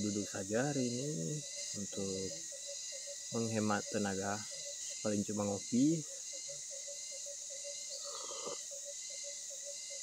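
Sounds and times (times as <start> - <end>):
high-pitched insect buzz: 0.0 - 10.0
low pulsing insect note: 0.0 - 10.0.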